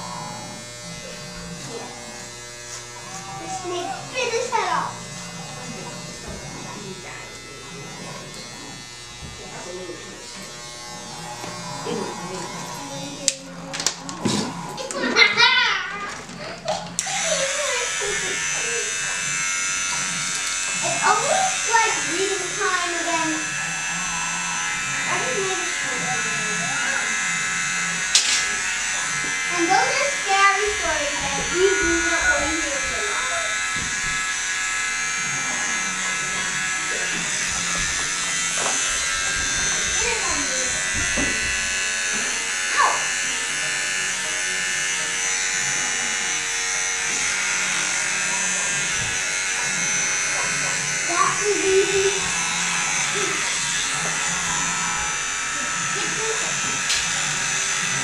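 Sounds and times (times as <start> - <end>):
electric hair clippers buzzing: 0.0 - 58.0.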